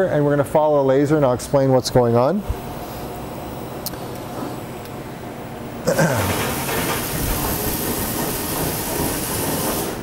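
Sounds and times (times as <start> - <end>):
fume extraction fan rushing: 0.0 - 10.0.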